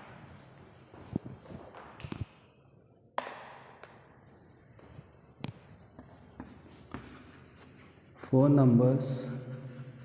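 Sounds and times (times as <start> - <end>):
chalk tapping on board: 6.0 - 8.8
chalk scratching on blackboard: 6.0 - 10.0.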